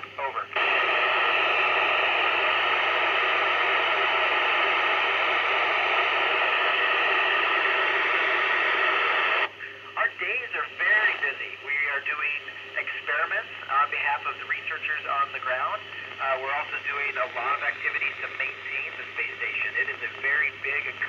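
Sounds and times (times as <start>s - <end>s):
radio receiver hiss: 0.0s - 21.0s
radio speech: 0.0s - 21.0s.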